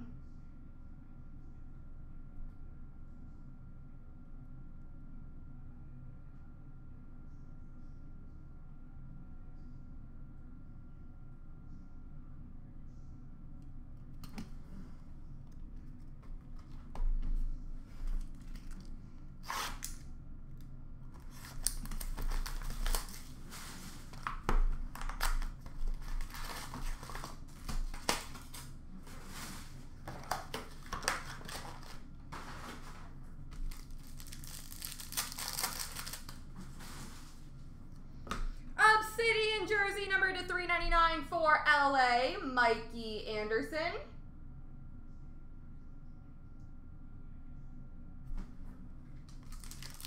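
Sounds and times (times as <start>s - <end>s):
wrappers tearing and crinkling: 18.1s - 20.0s, 21.2s - 37.2s, 49.3s - 50.0s.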